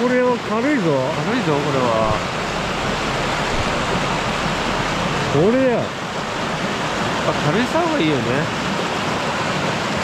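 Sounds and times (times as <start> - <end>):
stream rushing over rocks: 0.0 - 10.0.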